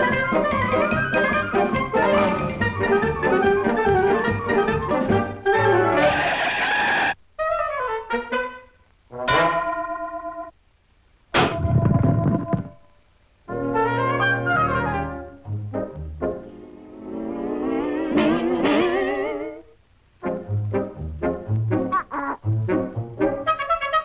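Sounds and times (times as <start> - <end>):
brass-led cartoon orchestral music: 0.0 - 10.5, 13.5 - 19.4, 20.2 - 24.0
falling sliding phrase: 16.5 - 19.7.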